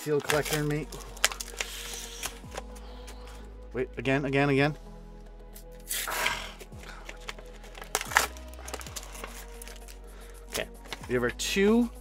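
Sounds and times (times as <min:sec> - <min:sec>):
blister pack crinkling: 0:00.0 - 0:02.8, 0:06.8 - 0:11.1
background music with held tones: 0:00.0 - 0:12.0.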